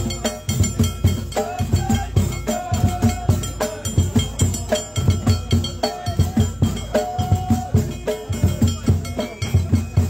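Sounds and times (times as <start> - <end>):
frame drums beaten fast: 0.0 - 10.0.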